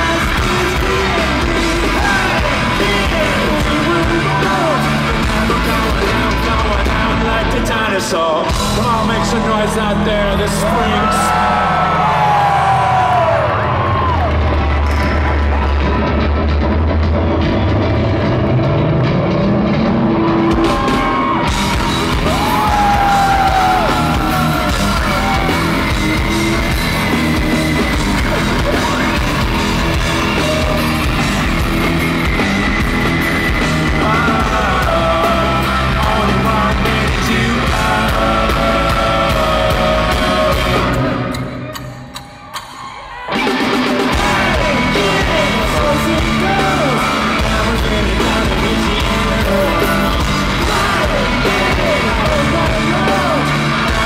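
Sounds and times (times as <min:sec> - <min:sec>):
rock band playing live: 0:00.0 - 0:54.0.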